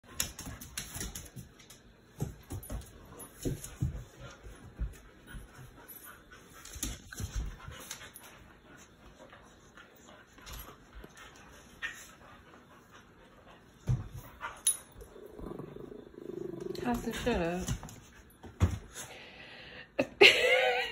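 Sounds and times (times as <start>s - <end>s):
dogs scuffling on wood floor: 0.0s - 15.0s, 16.7s - 19.1s.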